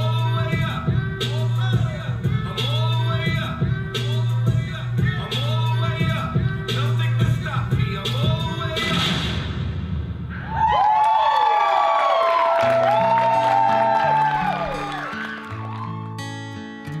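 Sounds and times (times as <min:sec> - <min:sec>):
hip hop music with heavy bass: 0:00.0 - 0:10.2
audience cheering and whooping: 0:10.3 - 0:16.4
audience clapping: 0:10.6 - 0:16.5
soft guitar music: 0:12.6 - 0:17.0.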